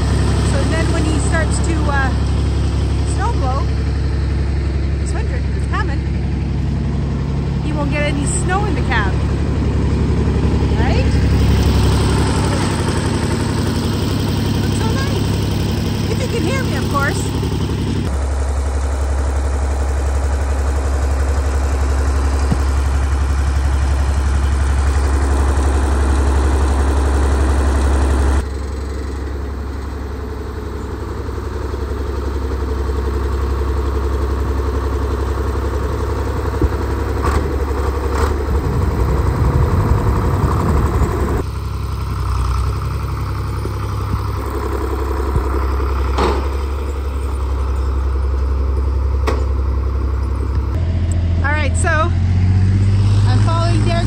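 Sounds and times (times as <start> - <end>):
tractor engine idling: 0.0 - 54.0.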